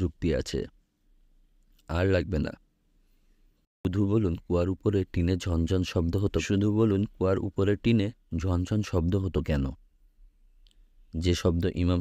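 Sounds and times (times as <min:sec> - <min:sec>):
narrator reading aloud: 0:01.9 - 0:02.6, 0:11.1 - 0:12.0.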